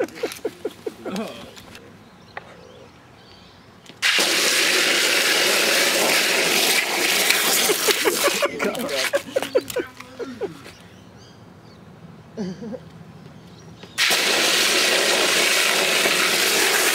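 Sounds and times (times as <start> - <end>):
longboard sliding on asphalt: 4.4 - 8.3.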